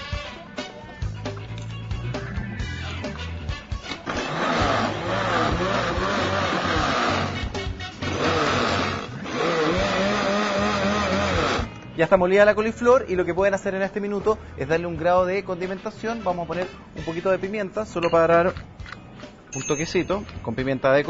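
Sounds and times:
food processor motor grinding: 3.9s - 11.8s.

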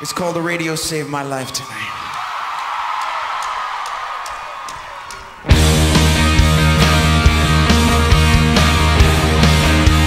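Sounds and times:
concert crowd cheering: 0.0s - 10.0s
band playing: 5.2s - 10.0s.

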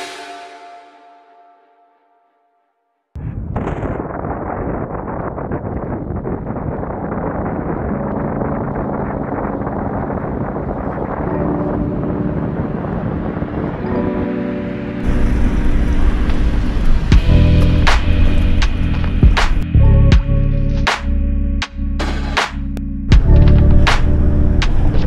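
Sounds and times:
background music: 0.0s - 2.7s, 7.6s - 25.0s
wind rushing over microphone: 3.2s - 19.6s.

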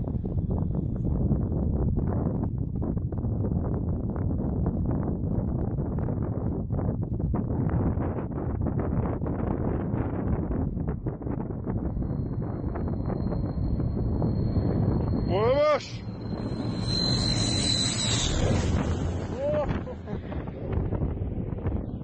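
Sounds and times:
wind buffeting microphone: 0.0s - 22.0s
turboprop aircraft engines whining: 10.8s - 22.0s.

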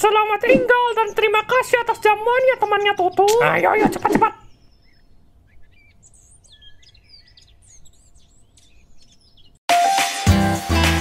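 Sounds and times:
birds chirping and whistling: 0.0s - 9.6s
loud music: 9.7s - 11.0s.

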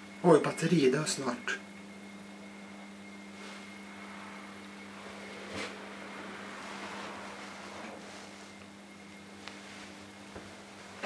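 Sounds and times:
elevator hum: 0.0s - 11.0s
rushing noise: 3.9s - 8.2s.

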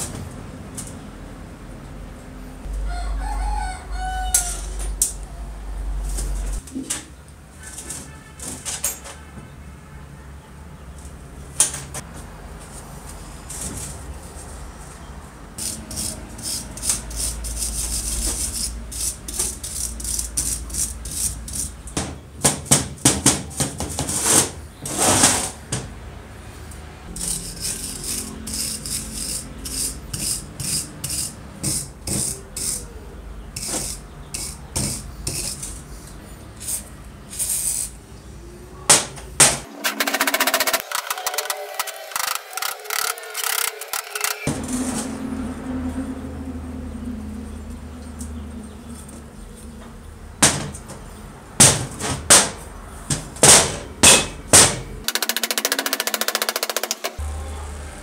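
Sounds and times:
metal blade scraping rust off steel: 15.6s - 21.8s, 27.1s - 32.9s, 53.4s - 57.2s.

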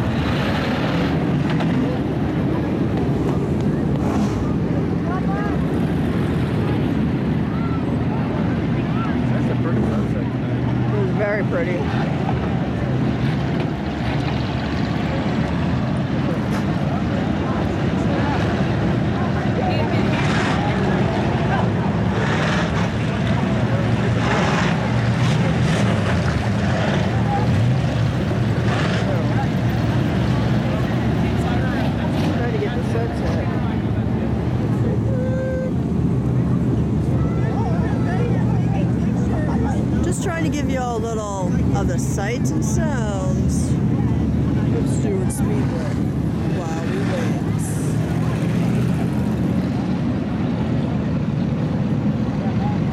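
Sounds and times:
race car engines rumbling: 0.0s - 52.9s.

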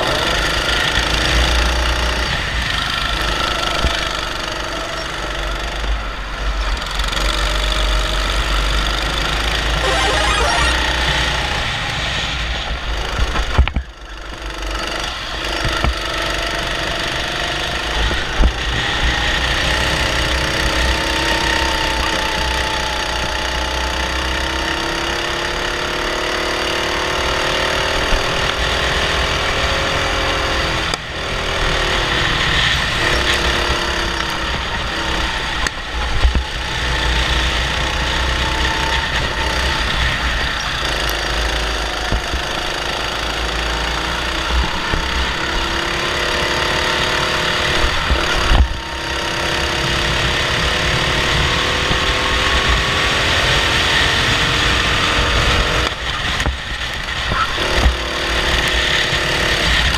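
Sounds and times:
kart engine running hard: 0.0s - 59.9s.

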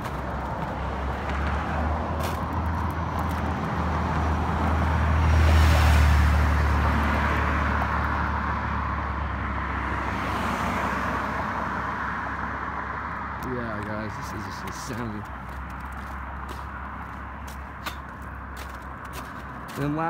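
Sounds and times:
car passing with tyre noise: 0.0s - 20.0s.

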